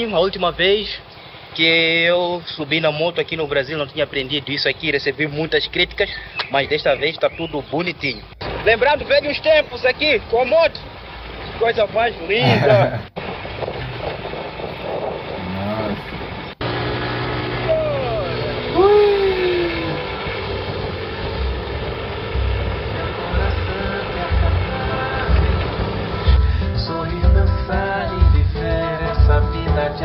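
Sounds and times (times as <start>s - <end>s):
vehicle engine and road noise: 0.0s - 29.9s
person laughing: 12.4s - 13.1s, 18.8s - 20.0s.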